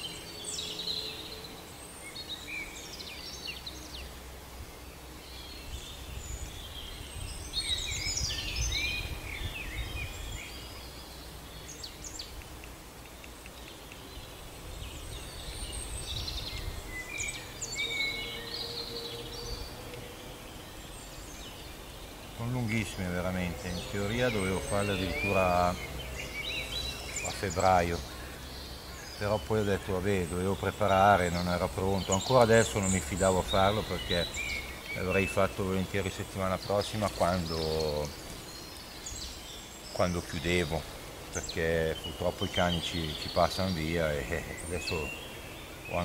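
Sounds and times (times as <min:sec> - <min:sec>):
songbirds chirping and singing: 0:00.0 - 0:46.0.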